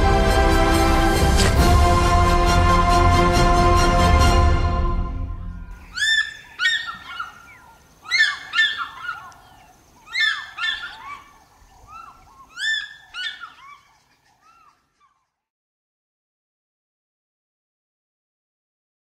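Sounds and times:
music track: 0:00.0 - 0:05.8
fish eagle yelping calls: 0:05.7 - 0:15.4.

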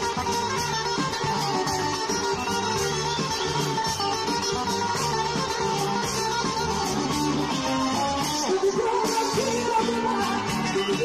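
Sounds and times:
live band playing folk-pop: 0:00.0 - 0:11.0
plucked guitar: 0:00.0 - 0:11.0.

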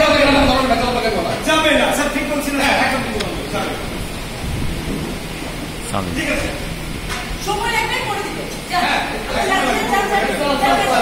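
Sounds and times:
rumbling hiss of hall noise: 0:00.0 - 0:11.0.

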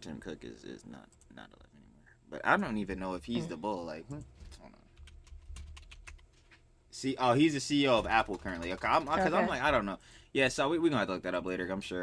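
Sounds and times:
keyboard typing: 0:04.9 - 0:06.6, 0:07.9 - 0:09.4.

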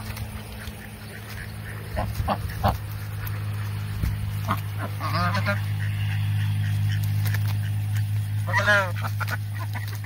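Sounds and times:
ducks feeding: 0:00.0 - 0:10.0
low hum: 0:00.0 - 0:10.0
duck quack: 0:00.4 - 0:10.0.

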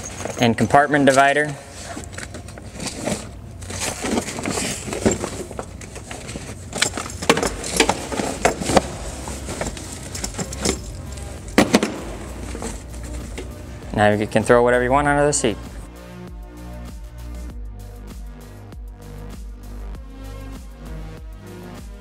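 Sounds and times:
fabric bag rustling and scraping: 0:00.0 - 0:13.8.

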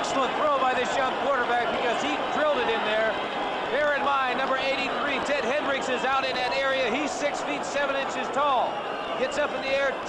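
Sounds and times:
man commentating: 0:00.0 - 0:10.0.

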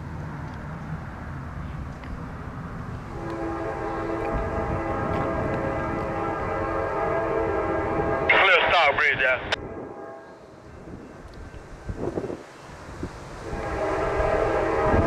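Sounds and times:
low rumble of train: 0:00.0 - 0:15.0
locomotive air horn: 0:03.1 - 0:08.6, 0:09.6 - 0:10.7, 0:13.4 - 0:15.0.

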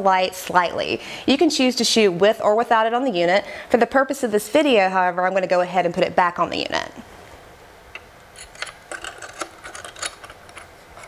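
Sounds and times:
glass scraping metal: 0:08.3 - 0:11.0.

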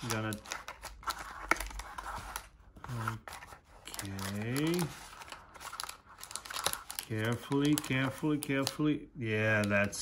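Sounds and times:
wrapper and cardboard crinkling: 0:00.0 - 0:10.0.

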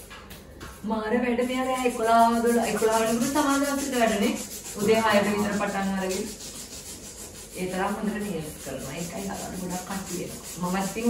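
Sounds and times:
nail file rubbing on fingernails: 0:00.7 - 0:11.0
woman talking: 0:00.8 - 0:06.4, 0:07.6 - 0:11.0.

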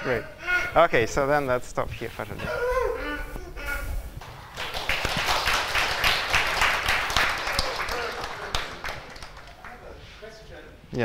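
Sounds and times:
audience applauding: 0:04.2 - 0:10.0.

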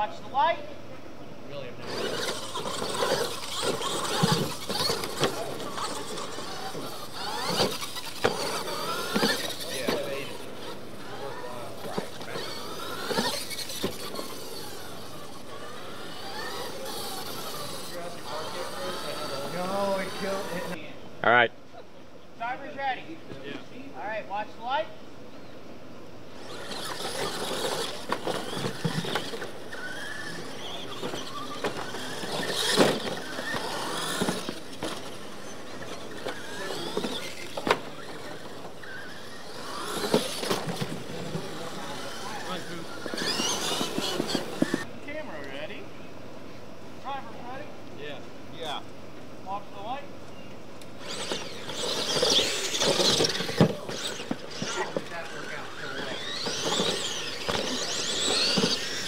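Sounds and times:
rc truck motor whine: 0:01.8 - 0:20.8, 0:26.3 - 0:45.5, 0:50.8 - 0:59.0.

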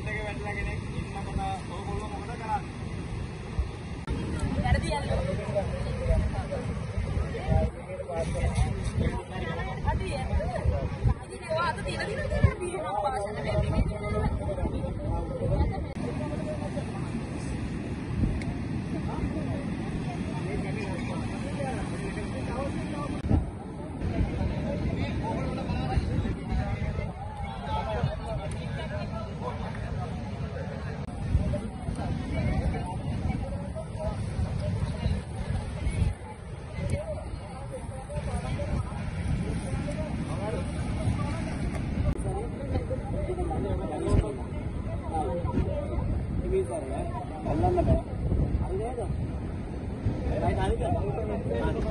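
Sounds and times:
people talking in background: 0:00.0 - 0:51.9
surf on a beach: 0:00.0 - 0:51.9
wind buffeting microphone: 0:00.0 - 0:51.9.

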